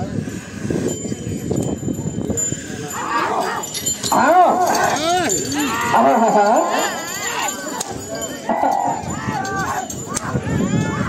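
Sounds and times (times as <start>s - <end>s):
men yelling: 2.9s - 11.0s.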